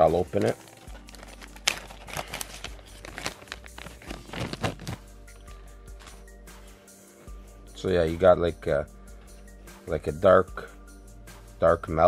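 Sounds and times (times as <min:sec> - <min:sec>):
quiet background music: 0:00.0 - 0:12.0
plastic bag crinkling: 0:00.2 - 0:05.0.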